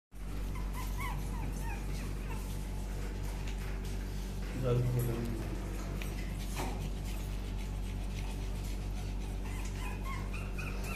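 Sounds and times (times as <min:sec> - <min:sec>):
puppies whimpering: 0:00.2 - 0:03.2, 0:07.2 - 0:10.9
steady low hum: 0:00.2 - 0:10.9.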